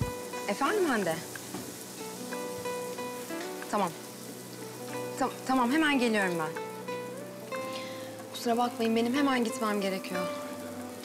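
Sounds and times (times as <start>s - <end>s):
faint steady hiss: 0.0s - 11.0s
woman speaking: 0.5s - 1.2s, 3.7s - 4.0s, 5.2s - 6.6s, 8.4s - 10.4s.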